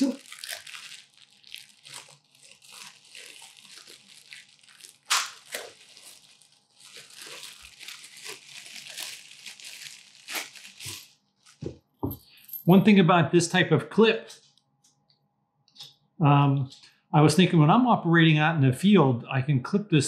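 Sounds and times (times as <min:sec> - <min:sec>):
plastic bag crinkling: 0:00.0 - 0:11.7.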